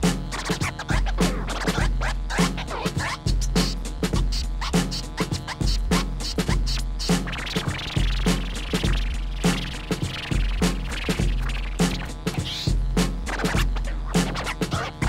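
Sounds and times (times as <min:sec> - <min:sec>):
hip-hop beat with deep bass: 0:00.0 - 0:15.0
vinyl record scratching: 0:00.0 - 0:15.0.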